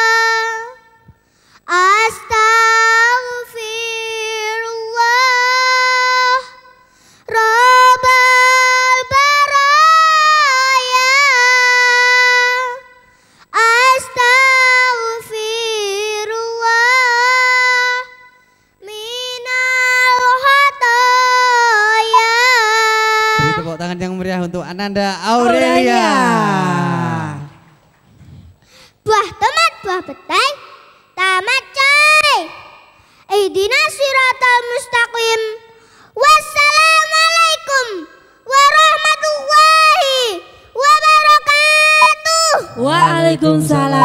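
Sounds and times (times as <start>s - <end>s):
girl singing into microphone: 0.0s - 23.7s, 37.7s - 44.0s.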